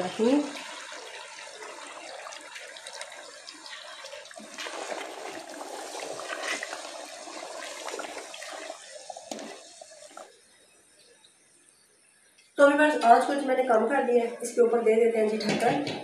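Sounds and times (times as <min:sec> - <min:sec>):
thick liquid sloshing and squelching: 0:00.5 - 0:10.3
wooden spoon stirring curry: 0:01.5 - 0:10.2.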